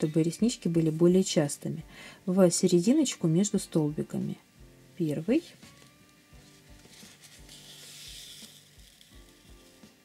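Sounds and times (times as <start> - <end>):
quiet background music: 0.0 - 10.0
thread drawn through fabric: 5.6 - 10.0.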